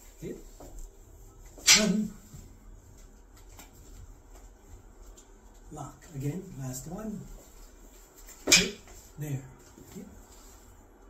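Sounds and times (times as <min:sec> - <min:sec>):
faint light taps and shuffles: 0:00.0 - 0:11.0.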